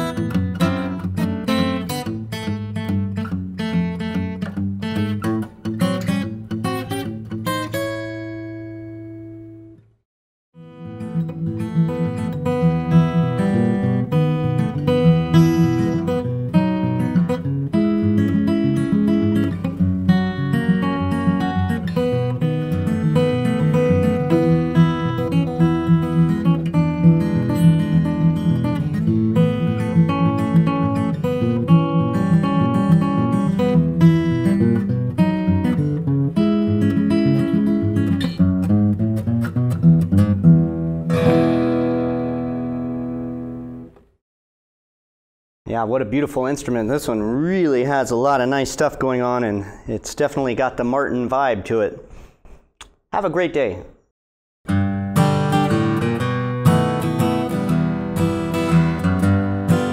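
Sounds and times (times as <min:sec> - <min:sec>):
acoustic guitar playing: 0:00.0 - 0:10.0, 0:10.6 - 0:44.2, 0:54.7 - 0:59.9.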